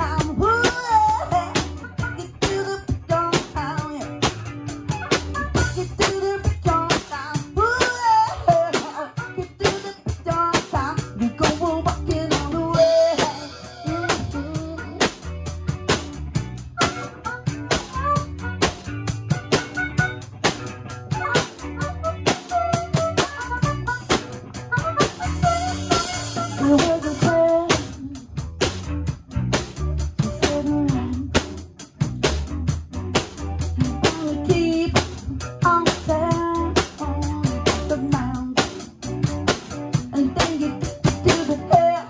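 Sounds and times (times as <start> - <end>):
person singing into a microphone: 0.0 - 4.3, 5.4 - 15.2, 25.2 - 28.4, 30.2 - 31.5, 33.8 - 39.0, 40.0 - 42.0
bass guitar: 0.0 - 42.0
drum kit beat: 0.0 - 42.0
electric guitar: 0.0 - 42.0.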